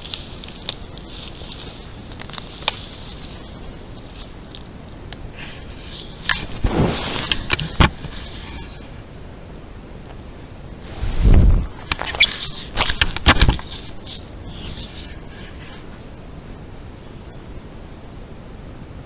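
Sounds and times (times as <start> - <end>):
scraping on camera housing: 5.6 - 9.0, 10.9 - 15.9.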